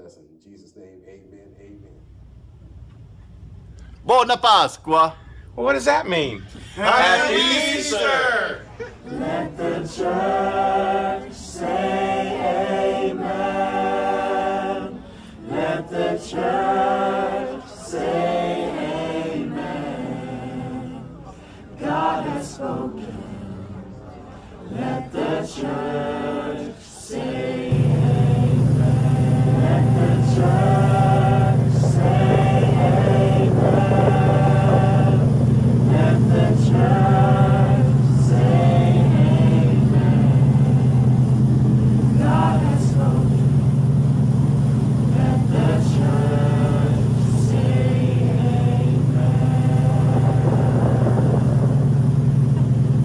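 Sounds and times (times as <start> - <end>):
singers breathing: 5.2 - 5.6, 6.4 - 6.9, 15.0 - 15.4, 21.2 - 21.8, 24.2 - 24.7
choir singing a cappella: 6.6 - 53.0
loud low drone: 27.7 - 53.0.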